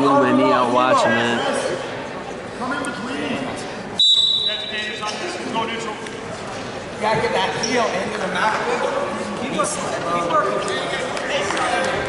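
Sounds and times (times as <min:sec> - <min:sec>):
referee whistle blast: 0:04.0 - 0:04.8.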